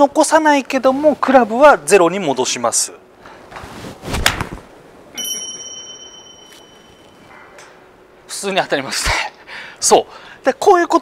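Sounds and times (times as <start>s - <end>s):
high bell-like ding: 5.2s - 7.3s.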